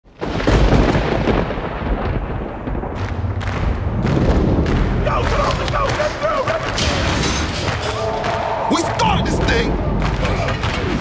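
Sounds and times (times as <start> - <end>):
thunder-like rumble: 0.1 - 6.2
sharp cracks: 0.2 - 11.0.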